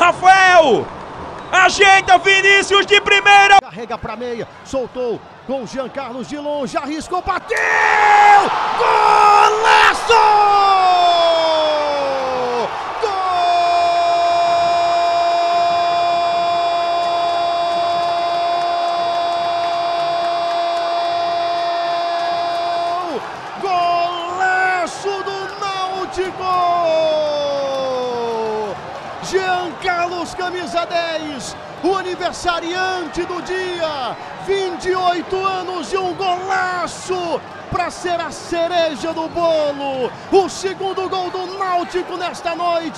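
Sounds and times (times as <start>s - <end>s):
stadium crowd cheering: 0.0s - 42.9s
commentator shouting goal cry: 1.6s - 3.7s, 6.7s - 42.9s.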